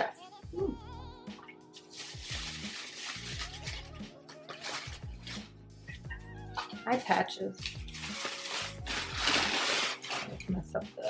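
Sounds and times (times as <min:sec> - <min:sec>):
background music: 0:00.0 - 0:11.0
tissue paper rustling and crinkling: 0:01.8 - 0:05.5, 0:06.8 - 0:10.6.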